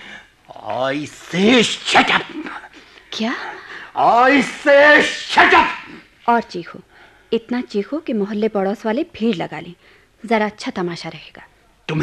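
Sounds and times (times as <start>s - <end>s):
person shouting angrily: 4.0s - 6.0s.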